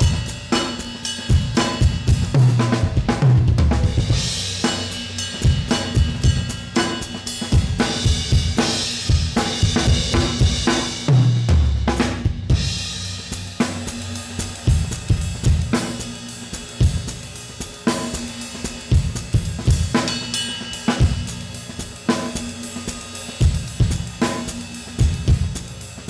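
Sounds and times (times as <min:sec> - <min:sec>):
cymbal crashes ringing out: 0:00.0 - 0:02.4, 0:04.0 - 0:11.1, 0:12.5 - 0:26.0
drum kit played with sticks: 0:00.0 - 0:26.0
heavy low drum hits: 0:01.3 - 0:06.8, 0:07.5 - 0:16.2.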